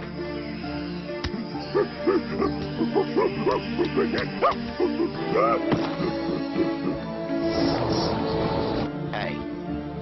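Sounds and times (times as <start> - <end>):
background music: 0.0 - 10.0
cartoon monkey hoots: 1.6 - 7.1.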